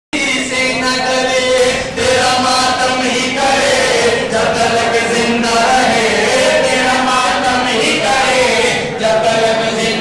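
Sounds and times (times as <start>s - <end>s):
men chanting a lament: 0.2s - 10.0s.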